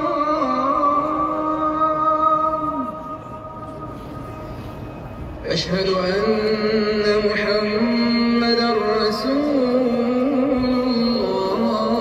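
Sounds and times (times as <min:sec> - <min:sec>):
echo of call to prayer: 0:00.0 - 0:04.3, 0:05.4 - 0:12.0.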